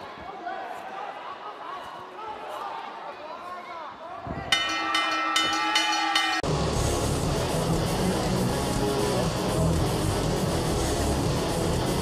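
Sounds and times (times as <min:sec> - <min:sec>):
boxing ring bell clanging: 0:04.6 - 0:06.5
loud electric guitar music: 0:06.4 - 0:12.0.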